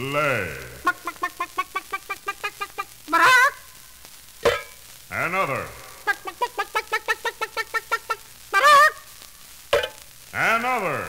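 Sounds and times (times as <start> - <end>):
hen clucking: 0.6 - 3.7, 4.4 - 4.8, 5.7 - 9.1
hen squawk: 0.8 - 3.8, 5.8 - 9.2.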